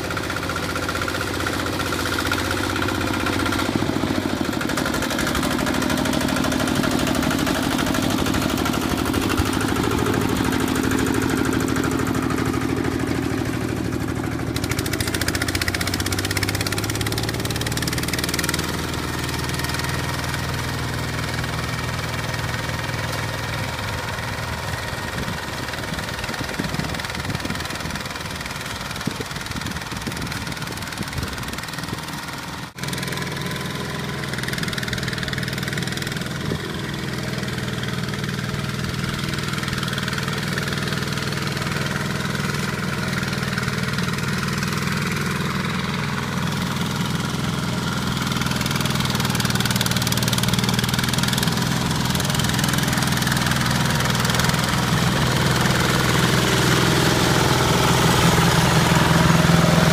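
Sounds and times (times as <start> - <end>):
diesel tractor engine running: 0.0 - 59.9
rotary tiller churning soil: 0.0 - 59.9.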